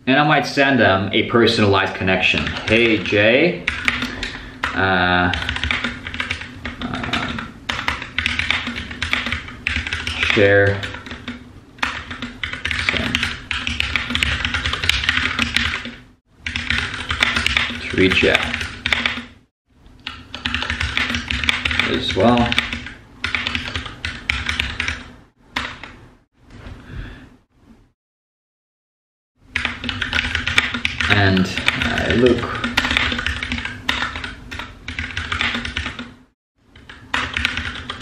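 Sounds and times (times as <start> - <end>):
computer keyboard typing: 2.2 - 19.4, 20.0 - 26.0, 29.5 - 38.0.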